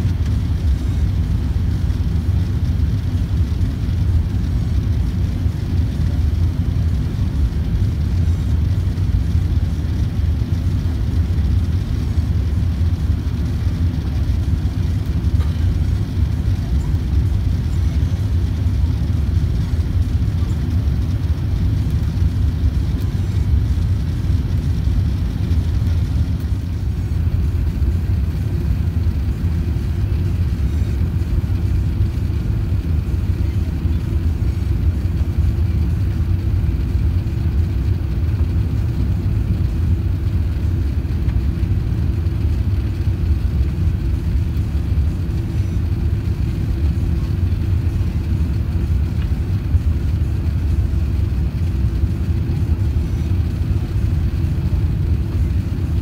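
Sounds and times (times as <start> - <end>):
airplane cabin engine rumble: 0.0 - 56.0.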